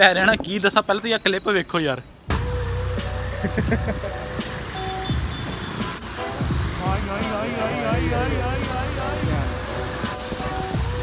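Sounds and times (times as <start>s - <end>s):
background music: 2.3s - 11.0s
motorcycle rumbling through water: 2.8s - 11.0s.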